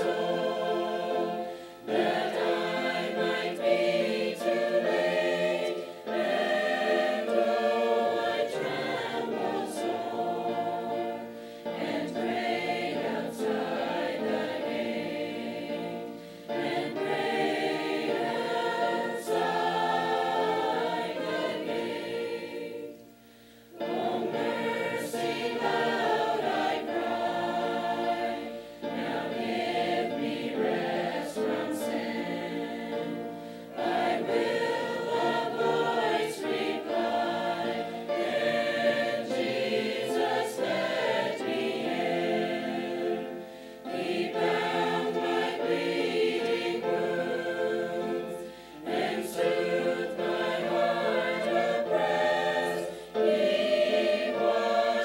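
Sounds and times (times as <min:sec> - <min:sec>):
choir singing a hymn: 0:00.0 - 0:55.0.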